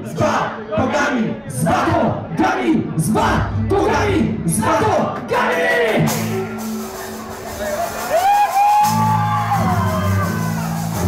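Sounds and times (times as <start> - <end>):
low bass notes: 1.5 - 8.1.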